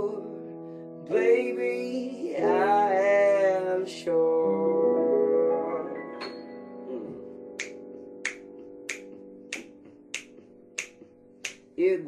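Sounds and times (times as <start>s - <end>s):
person singing: 0.0s - 7.7s, 11.7s - 12.0s
held piano chord: 0.0s - 11.8s
finger snaps: 7.6s - 11.8s.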